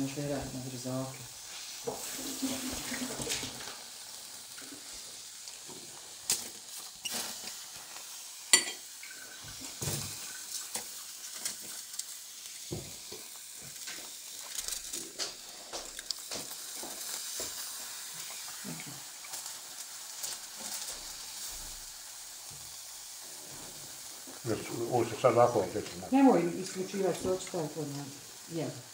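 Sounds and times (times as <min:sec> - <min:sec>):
mushrooms sizzling in hot fat: 0:00.0 - 0:28.9.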